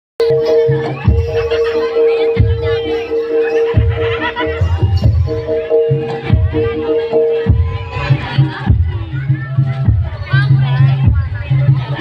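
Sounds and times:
gamelan music: 0.2 - 12.0.

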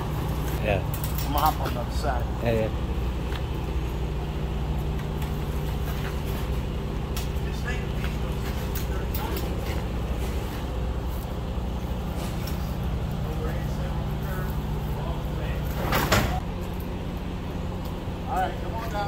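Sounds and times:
truck engine idling: 0.0 - 19.0.

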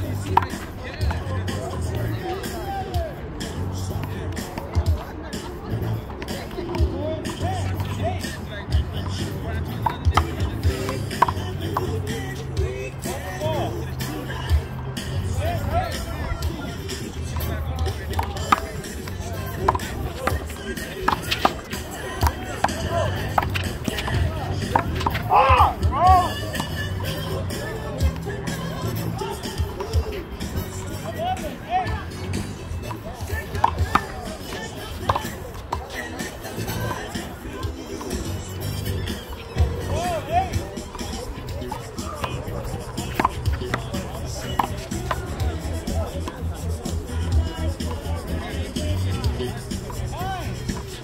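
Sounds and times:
background music: 0.0 - 51.0.

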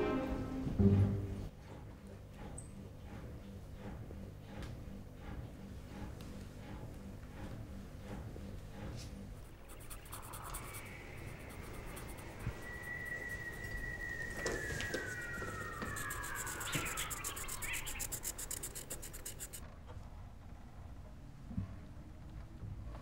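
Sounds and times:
fast high-pitched ticking: 9.5 - 19.6
high whistling tone sliding down: 9.8 - 18.6.

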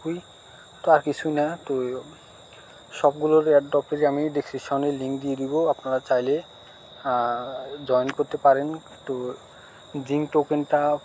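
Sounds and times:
man talking: 0.0 - 0.2, 0.8 - 2.2, 2.9 - 11.0.

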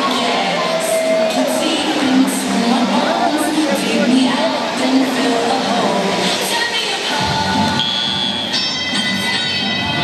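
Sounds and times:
crowd noise in a gym: 0.0 - 10.0
music over public address: 0.0 - 10.0.

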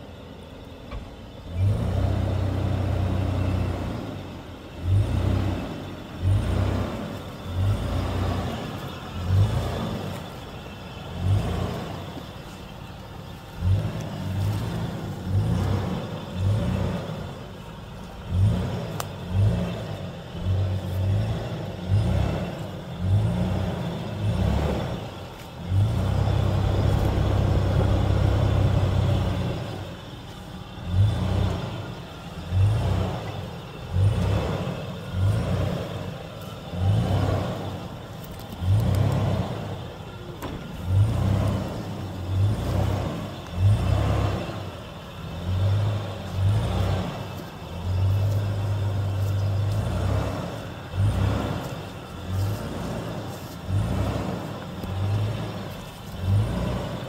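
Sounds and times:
suv engine working under load: 0.0 - 57.0.

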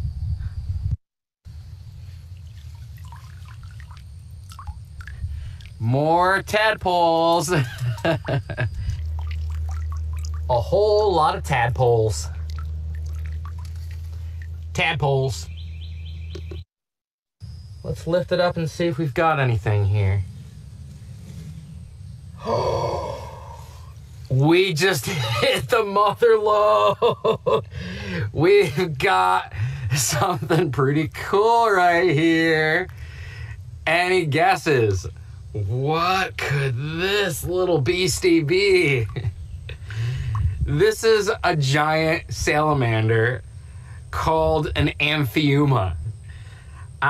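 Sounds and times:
low steady rumble: 0.0 - 16.6, 17.4 - 47.0
water drips and splashes: 2.1 - 5.9, 7.1 - 10.8, 11.4 - 14.8
low rumble: 17.5 - 24.4.

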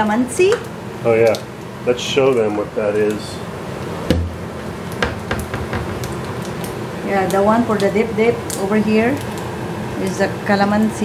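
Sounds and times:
bottle taps and clicks: 4.1 - 4.4
dull thump: 4.1 - 4.4.

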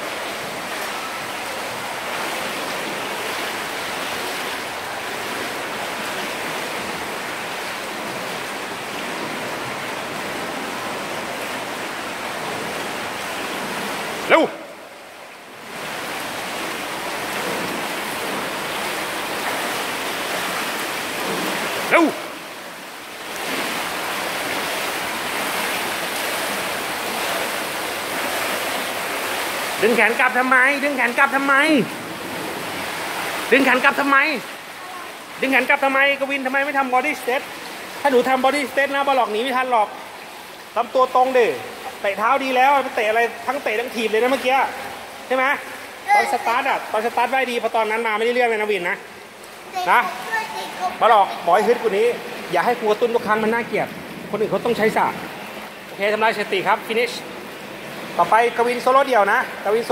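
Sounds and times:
swimmers splashing: 0.0 - 59.9
person shouting: 46.1 - 46.6.

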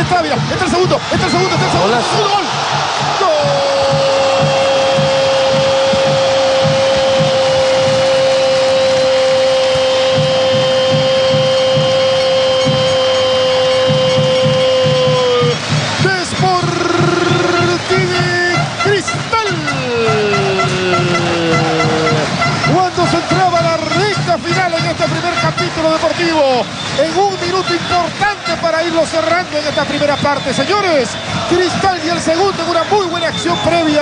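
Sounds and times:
commentator shouting goal: 0.0 - 34.0.

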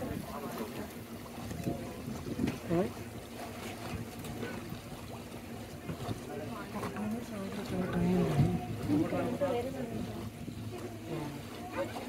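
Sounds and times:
boat motor humming: 0.0 - 12.0
water wash: 0.0 - 12.0.

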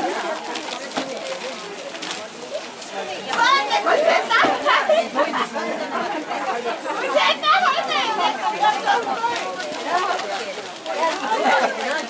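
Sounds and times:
crowd chatter: 0.0 - 12.0
excited high-pitched voices: 6.8 - 10.2.

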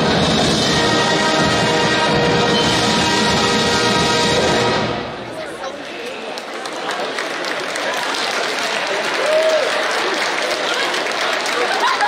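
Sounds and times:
large audience applauding: 6.2 - 12.0.

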